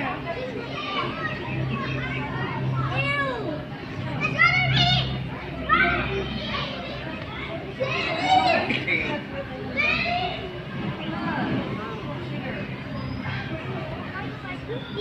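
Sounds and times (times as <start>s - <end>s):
children chattering: 0.0s - 15.0s
steady low hum: 0.0s - 15.0s
children shouting high-pitched: 0.3s - 10.7s, 13.0s - 15.0s.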